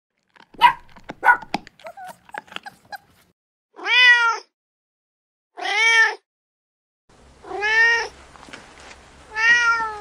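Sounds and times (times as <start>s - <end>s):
dog barking: 0.6s - 2.1s
dog yipping and whining: 0.6s - 3.3s
cat meowing: 3.8s - 4.5s, 7.4s - 8.1s, 9.3s - 10.0s.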